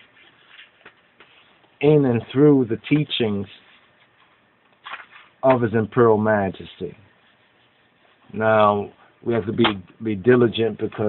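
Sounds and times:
faint room noise: 0.0 - 11.0
man speaking: 1.8 - 3.7, 5.4 - 7.1, 8.3 - 11.0.

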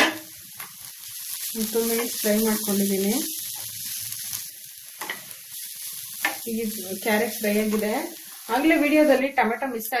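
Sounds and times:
bread sizzling in a pan: 0.0 - 10.0.

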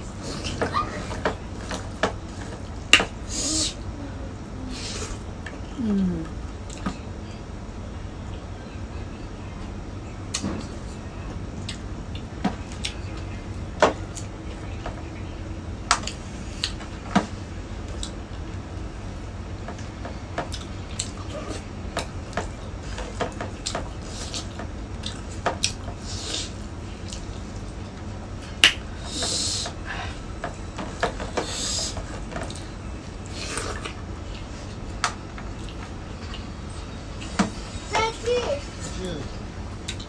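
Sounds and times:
low steady hum: 0.0 - 40.0
chewing and mouth noises: 35.4 - 36.5.

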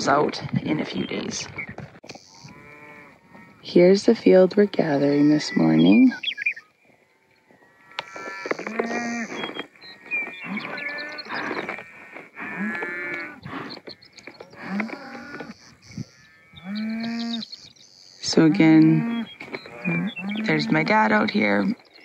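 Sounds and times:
cattle mooing: 2.2 - 6.0, 7.2 - 17.5, 18.3 - 21.2.

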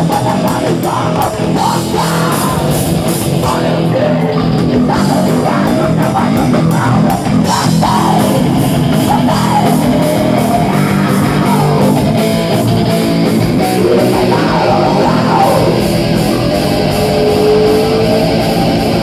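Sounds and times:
bass guitar: 0.0 - 19.0
distorted electric guitar: 0.0 - 19.0
steady drum beat: 0.0 - 19.0.

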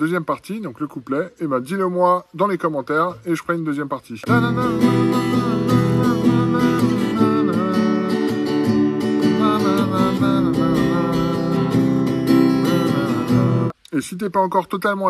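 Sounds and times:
acoustic guitar picking and strumming: 4.2 - 13.8.

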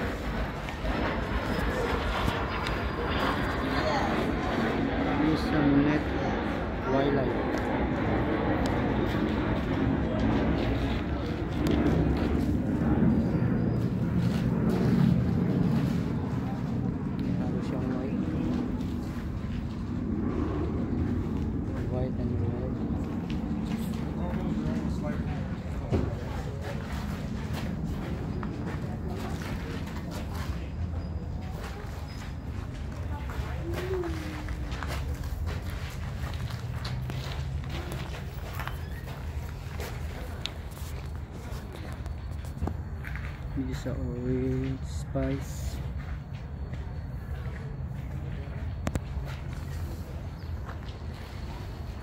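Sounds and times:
people talking in background: 0.0 - 52.0.

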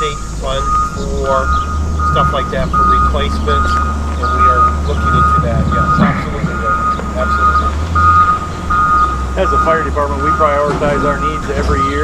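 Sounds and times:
backup alarm beeping: 0.0 - 12.0
diesel engine rumble: 0.0 - 12.0.

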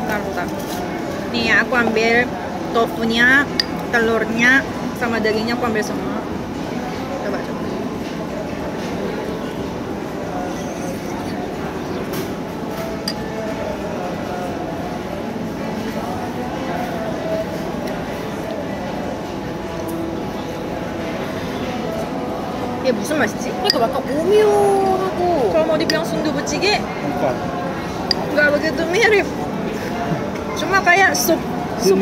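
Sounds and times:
indistinct chatter: 0.0 - 32.0
spoons clinking on tableware: 13.0 - 13.3.

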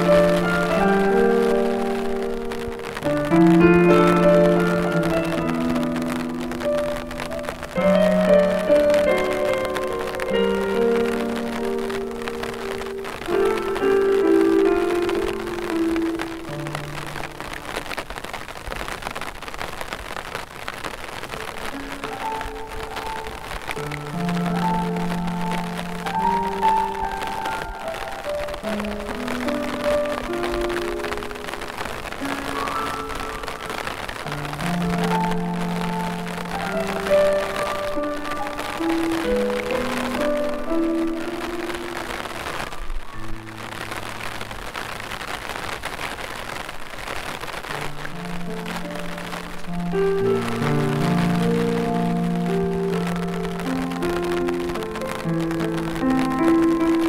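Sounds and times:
slow piano music: 0.0 - 19.2, 21.1 - 57.0
rain falling: 0.0 - 57.0.

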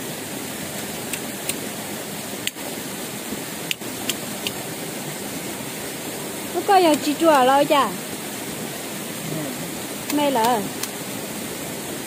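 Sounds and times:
running water rushing: 0.0 - 12.0.

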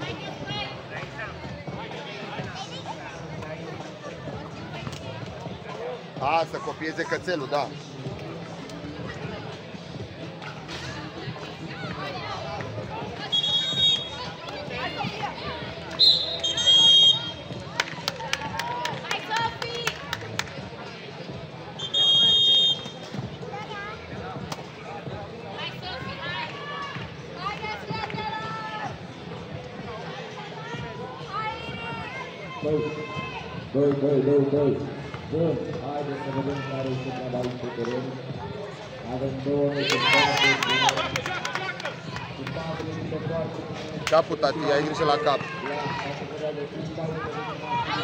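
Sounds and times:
referee's whistle blasts: 13.3 - 14.2, 16.0 - 17.4, 21.8 - 23.0.

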